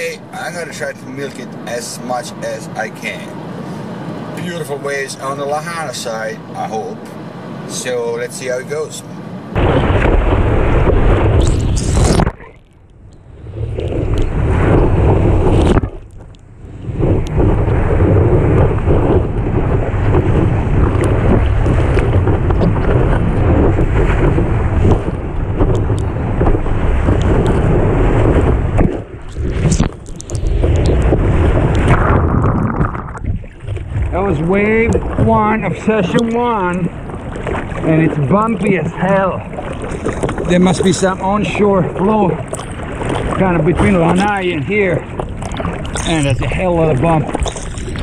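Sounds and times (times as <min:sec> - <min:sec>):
wind buffeting camera: 0:09.4 - 0:48.0
whitewater rushing: 0:26.2 - 0:48.0.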